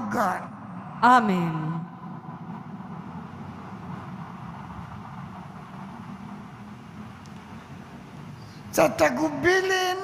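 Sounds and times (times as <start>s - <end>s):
room ambience rumble and hiss: 0.0s - 10.0s.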